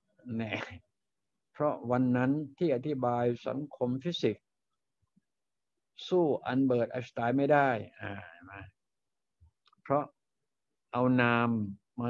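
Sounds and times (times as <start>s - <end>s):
man talking: 0.3s - 0.8s.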